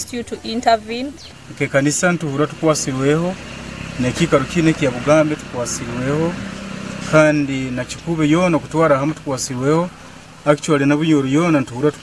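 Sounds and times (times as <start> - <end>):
idling engine hum: 0.0 - 12.0
man speaking: 1.5 - 3.4, 4.0 - 6.4, 7.1 - 12.0.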